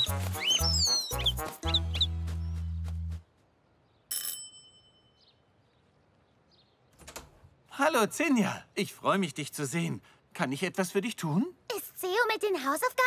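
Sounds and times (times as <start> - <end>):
bird chirps: 0.0 - 2.8, 5.0 - 7.0
cartoon background music: 0.0 - 3.2.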